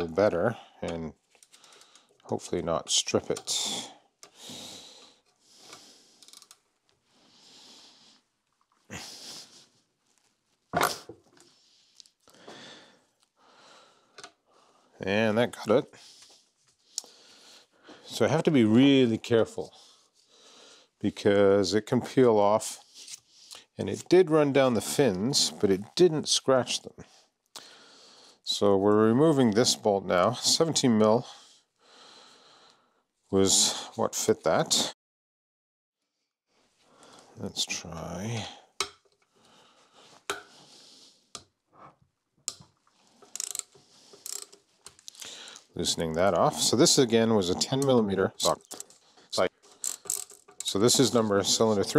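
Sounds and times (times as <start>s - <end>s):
faint tool handling noise: 41.4s - 46.3s, 47.5s - 51.9s
ratchet wrench clicking: 43.3s - 44.6s, 49.8s - 50.5s.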